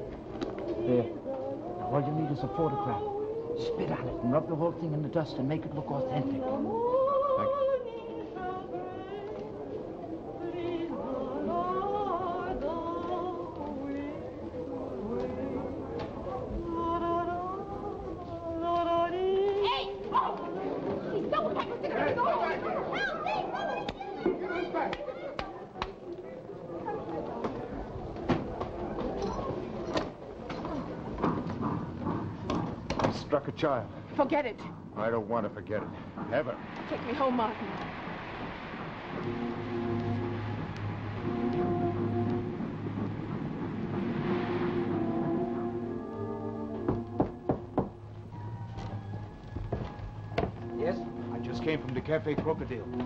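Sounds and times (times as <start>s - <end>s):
person singing with vibrato: 0.7s - 4.6s, 5.8s - 20.6s
background music: 38.8s - 53.0s.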